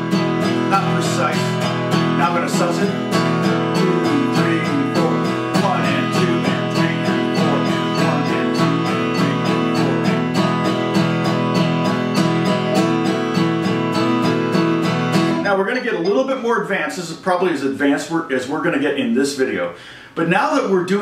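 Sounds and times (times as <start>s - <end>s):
acoustic guitar strumming: 0.0s - 16.9s.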